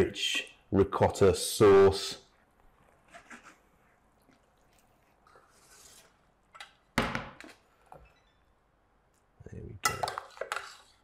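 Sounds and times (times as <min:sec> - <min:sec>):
spoon scraping in a pan: 0:09.9 - 0:11.0.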